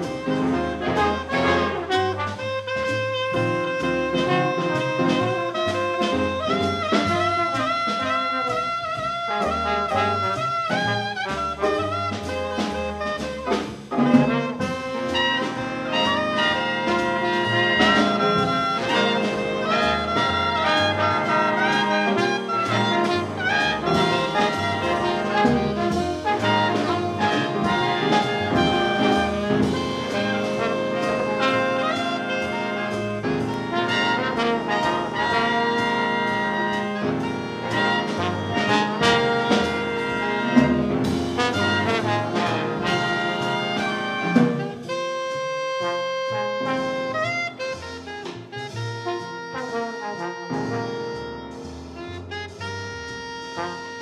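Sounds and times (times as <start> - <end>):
jazz combo accompaniment: 0.0 - 54.0
trombone jazz solo: 0.0 - 54.0.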